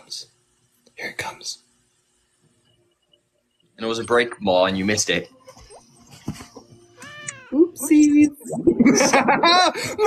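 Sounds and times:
cat meow sound effect: 7.0 - 7.8.

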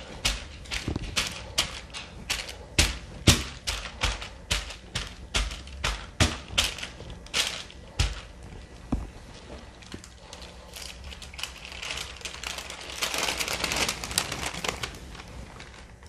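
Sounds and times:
wax paper crinkling: 0.0 - 16.0.

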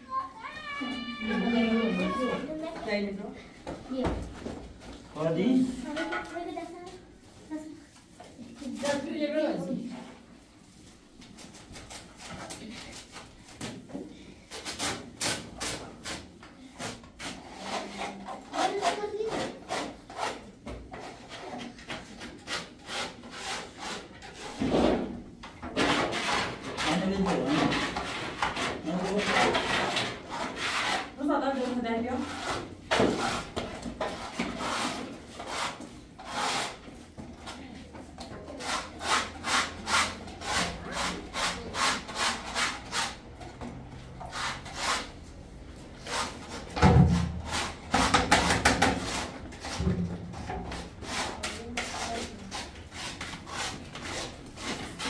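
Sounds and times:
trowels scraping plaster: 14.4 - 37.6, 38.2 - 43.3, 44.2 - 45.2, 45.9 - 55.0.

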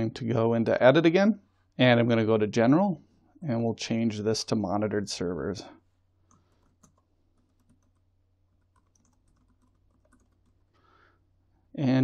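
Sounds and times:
computer keyboard keystrokes: 6.3 - 10.7.

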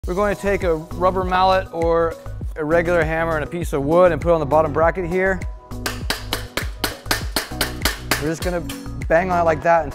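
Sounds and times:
background music: 0.0 - 9.9
hammer knocking on wood: 5.8 - 8.7.

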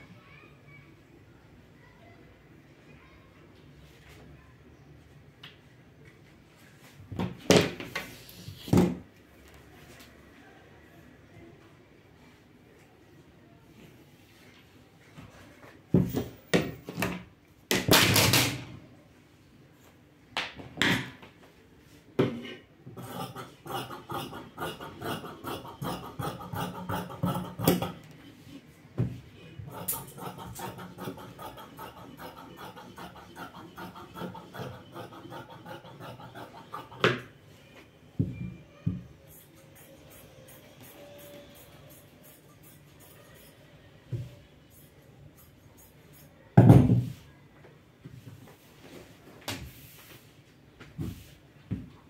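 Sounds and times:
blades scraping work surface: 23.0 - 28.0, 29.7 - 37.2.

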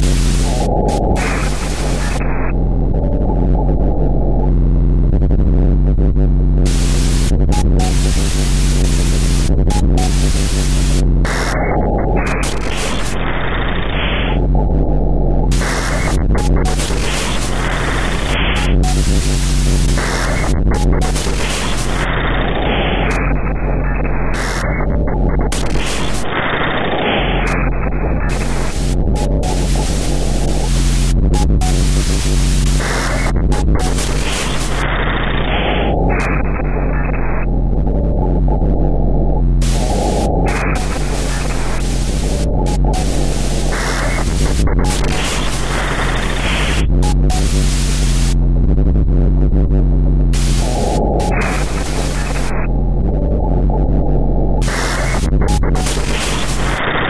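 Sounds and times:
heavy low hum: 0.0 - 57.0
static and white noise: 0.0 - 57.0.

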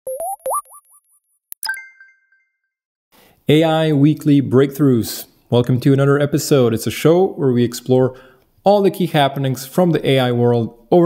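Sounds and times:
electronic upward-gliding bloops: 0.1 - 1.0.

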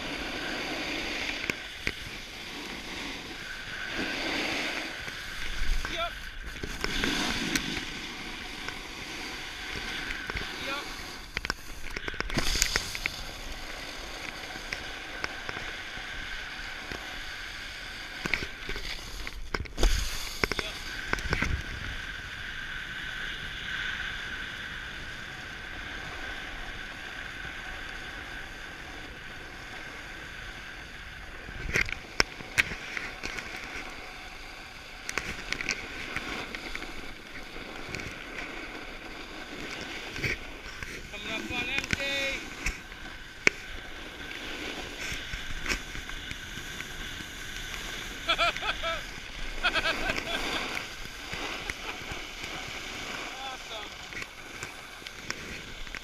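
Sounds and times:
skis sliding on packed snow: 0.0 - 56.0.

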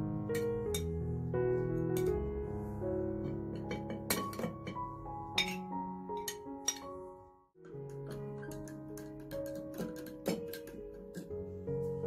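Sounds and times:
background music with held notes: 0.0 - 12.0.

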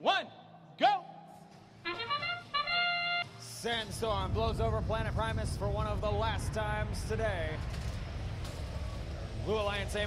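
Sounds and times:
held horn-like notes: 1.8 - 3.6.

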